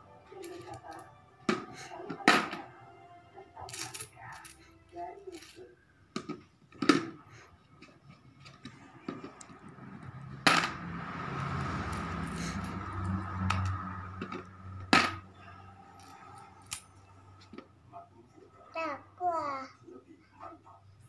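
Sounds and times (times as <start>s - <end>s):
coins clinking into plastic coin bank: 3.7s - 4.6s.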